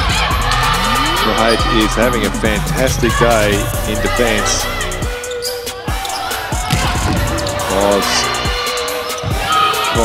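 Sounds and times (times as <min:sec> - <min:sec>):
music: 0:00.0 - 0:10.0.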